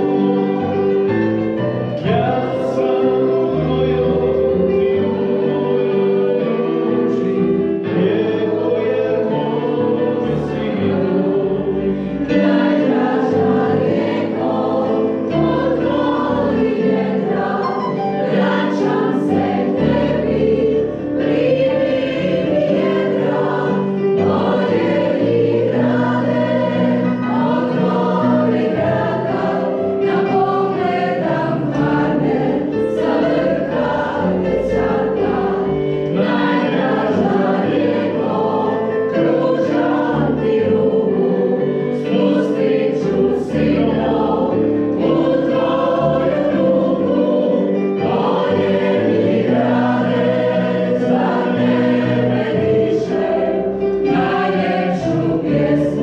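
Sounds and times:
choir singing held notes: 0.0s - 56.0s.

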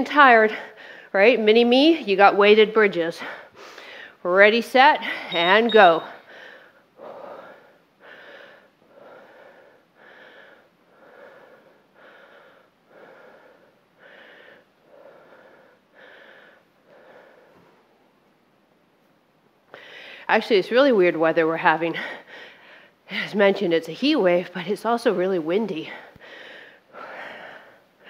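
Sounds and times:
woman breathing hard: 0.5s - 1.2s, 3.2s - 4.2s, 5.0s - 17.8s, 19.7s - 20.3s, 21.9s - 23.3s, 25.9s - 28.0s.

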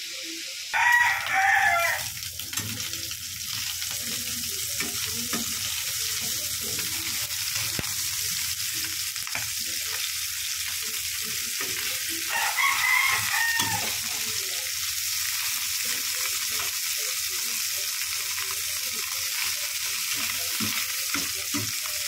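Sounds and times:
food sizzling in a pan: 0.0s - 22.0s
rooster crowing: 0.7s - 2.1s, 12.3s - 14.0s.

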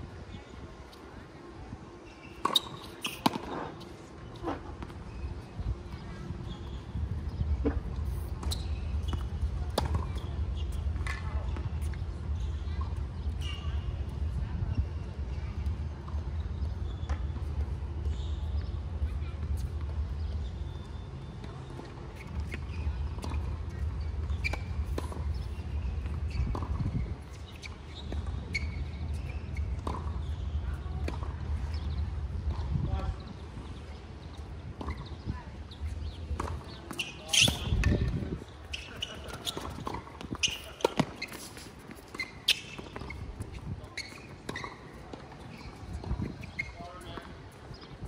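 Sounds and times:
wind buffeting microphone: 5.2s - 16.8s, 23.0s - 27.5s, 30.3s - 36.7s, 37.5s - 40.6s.

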